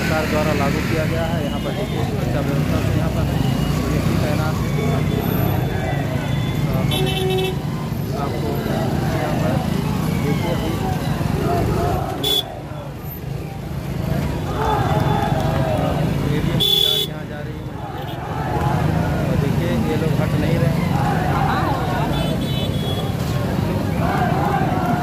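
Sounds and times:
crowd babble and calling out: 0.0 - 25.0
vehicle horn toot: 6.9 - 7.6.

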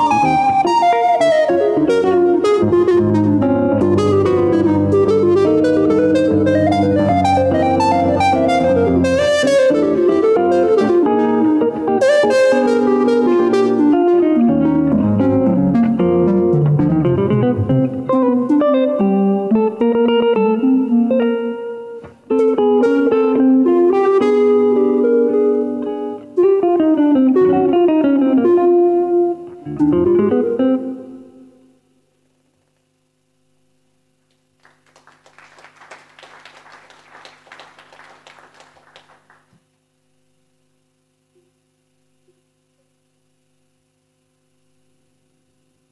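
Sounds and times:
woodwind melody: 0.0 - 16.4, 22.4 - 25.7
picked electric guitar: 0.0 - 31.8.

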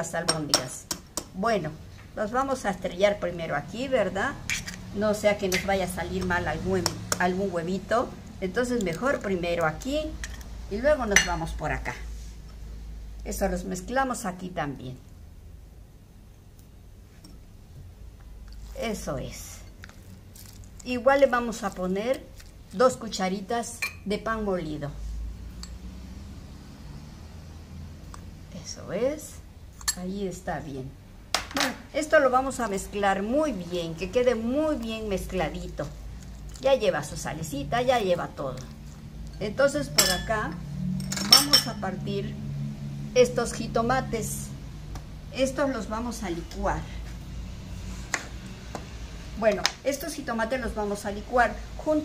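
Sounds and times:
low steady hum: 0.0 - 52.0.

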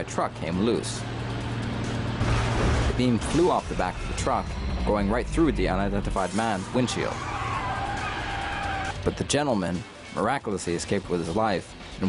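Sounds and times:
car tyres screeching: 3.9 - 9.0.

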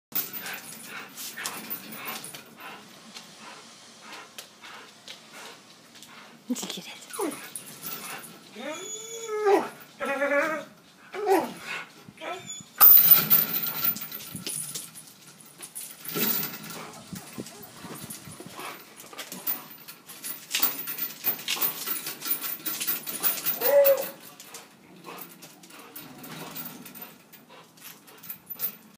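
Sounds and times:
dog whining: 7.1 - 13.0, 23.2 - 24.4
rope rustling and scuffling: 12.8 - 28.8.

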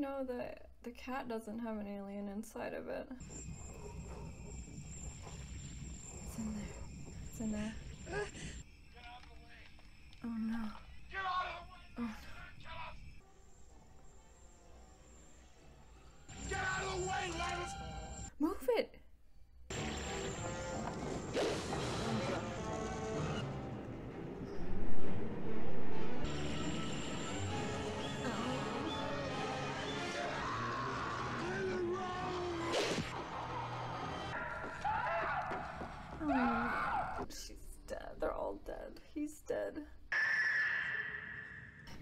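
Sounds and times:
tense horror score music: 3.2 - 18.3, 19.7 - 37.3
woman screaming: 36.2 - 37.2.

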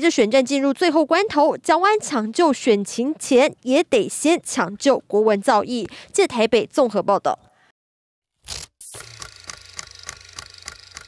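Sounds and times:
sharp repeating ticks: 8.8 - 11.0.

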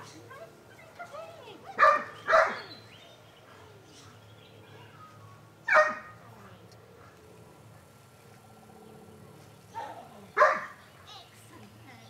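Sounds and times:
dog barking: 1.8 - 2.7, 5.7 - 6.1, 10.4 - 10.8.

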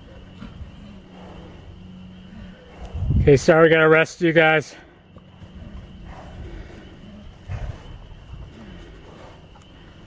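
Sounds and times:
horse snorting: 0.1 - 3.4, 5.4 - 9.9.

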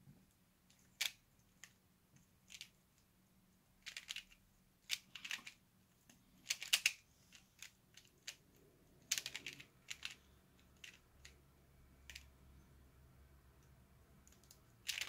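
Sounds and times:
plastic puzzle pieces clacking: 0.7 - 1.8, 2.4 - 2.8, 3.8 - 11.4, 12.0 - 12.3, 14.2 - 15.0.

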